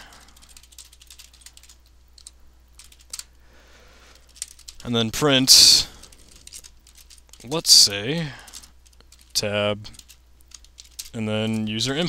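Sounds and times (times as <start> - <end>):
computer keyboard typing: 0.0 - 3.3, 4.2 - 4.9, 5.9 - 12.0.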